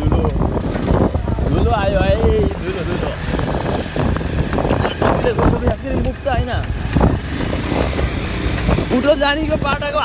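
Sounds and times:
motorcycle riding on dirt road: 0.0s - 10.0s
wind buffeting microphone: 0.0s - 10.0s.

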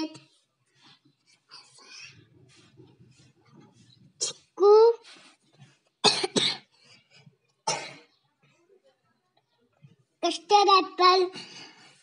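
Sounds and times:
child coughing: 6.0s - 6.7s, 7.6s - 8.1s.

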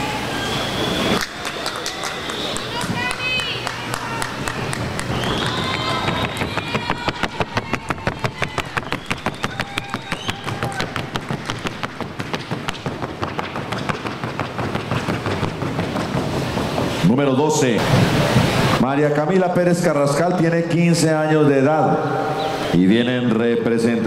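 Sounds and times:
hoofbeats on wooden board: 5.4s - 17.1s.

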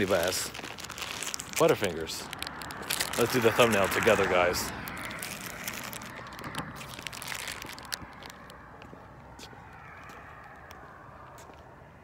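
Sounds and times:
plastic wrapper crinkling: 0.0s - 8.6s.

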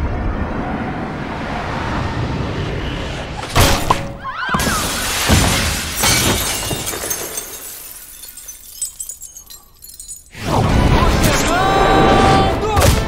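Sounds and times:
glass backboard shattering: 4.6s - 10.4s
glass shards tinkling on floor: 6.0s - 10.4s.

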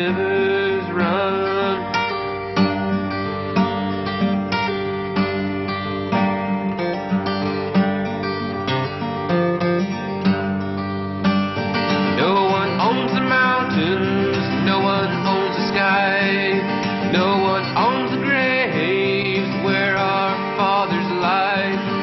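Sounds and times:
acoustic guitar folk tune: 0.0s - 22.0s.

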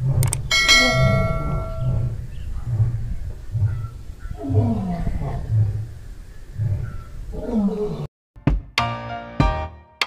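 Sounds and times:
big cat falling moan: 0.0s - 5.8s
big cat grunting: 0.0s - 5.9s.

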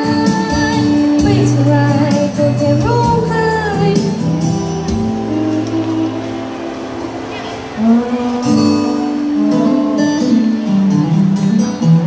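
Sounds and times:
boy singing into a microphone: 0.0s - 4.4s
backing music over speakers: 0.0s - 12.0s.

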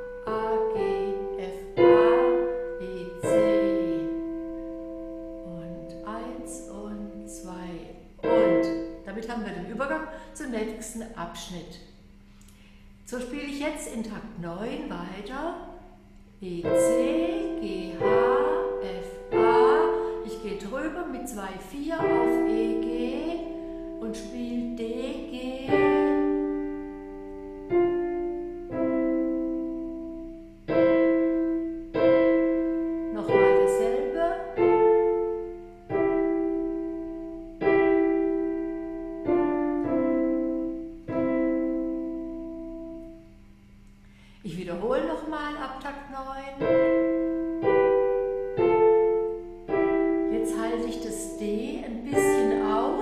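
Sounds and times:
digital piano melody: 0.0s - 9.8s, 16.5s - 43.6s, 46.5s - 53.0s.

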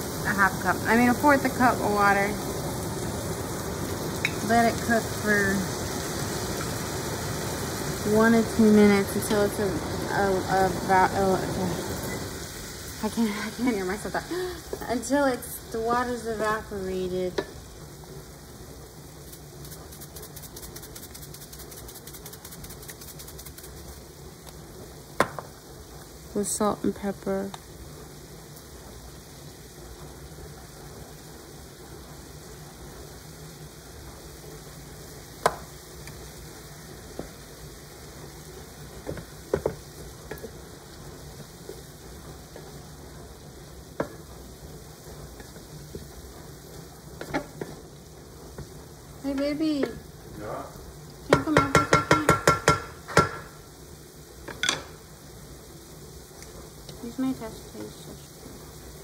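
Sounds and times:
vegetables sizzling in a frying pan: 0.0s - 59.0s.

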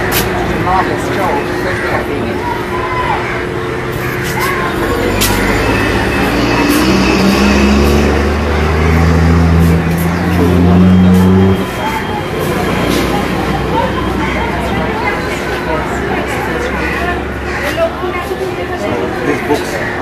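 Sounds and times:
engine running: 0.0s - 18.6s
faint voices: 0.0s - 20.0s.

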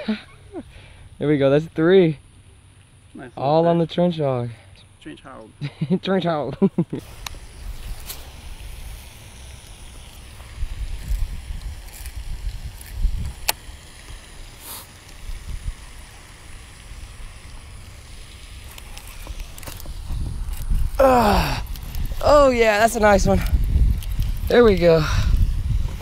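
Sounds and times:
sharp clicks: 9.4s - 15.3s, 21.6s - 24.8s
wind buffeting microphone: 9.8s - 13.5s, 19.8s - 26.0s.

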